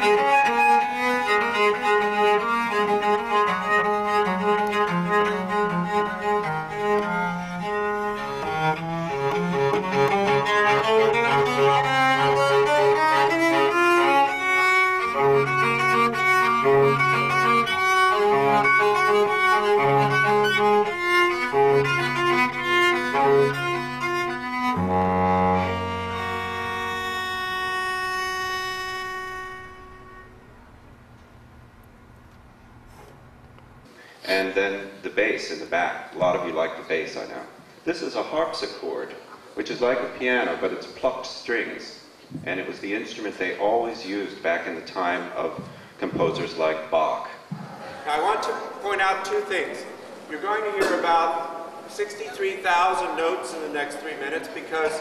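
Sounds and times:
bowed cello: 0:00.0 - 0:30.8.

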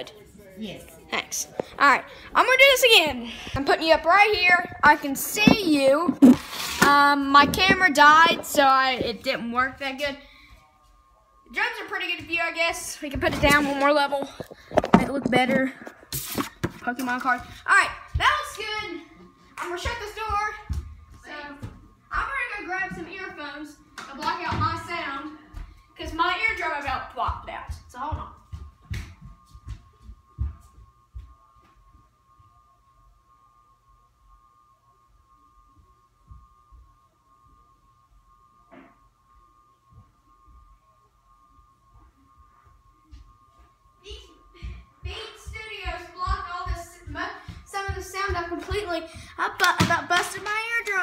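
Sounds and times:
boy talking: 0:00.0 - 0:10.2, 0:11.5 - 0:15.8, 0:16.8 - 0:25.4, 0:26.0 - 0:28.4, 0:45.1 - 0:51.0.

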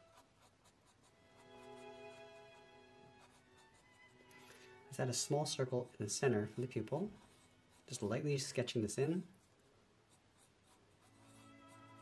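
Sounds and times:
pencil scratching on paper: 0:00.0 - 0:04.2, 0:05.6 - 0:08.2, 0:09.3 - 0:12.0
soft background music: 0:00.0 - 0:09.3, 0:10.4 - 0:12.0.

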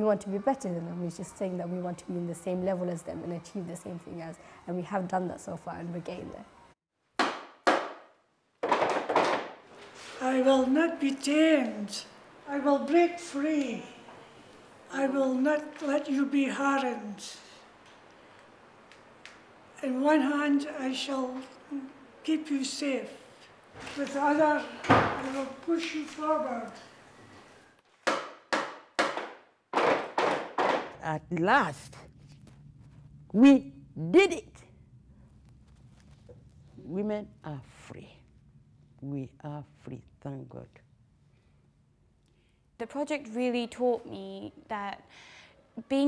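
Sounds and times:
wooden poles knocking on floor: 0:07.2 - 0:09.6, 0:28.0 - 0:31.0.

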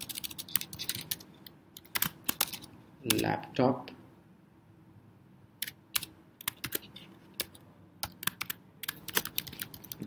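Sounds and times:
typing on computer keyboard: 0:00.0 - 0:03.2, 0:05.6 - 0:10.0.

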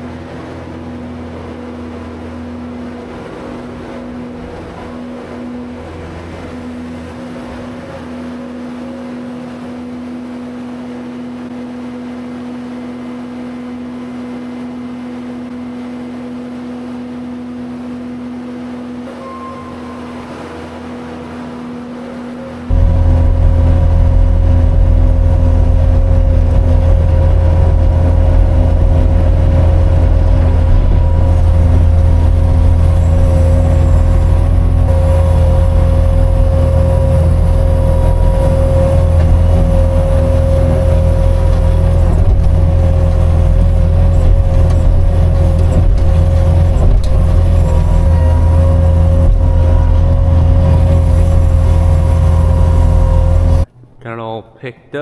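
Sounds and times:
diesel engine running: 0:17.4 - 0:53.7.

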